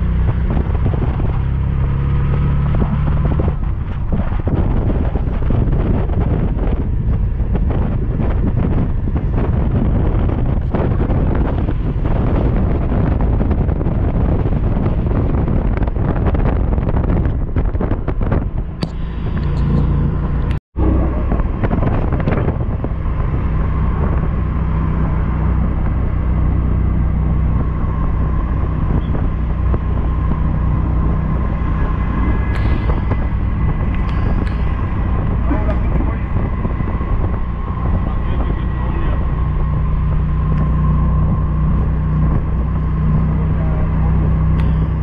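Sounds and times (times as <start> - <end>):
vehicle road and engine rumble: 0.0 - 45.0.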